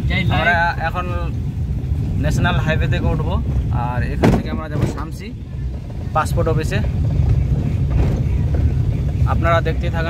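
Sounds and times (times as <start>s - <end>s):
car engine and road noise: 0.0s - 10.0s
person talking: 0.1s - 0.8s.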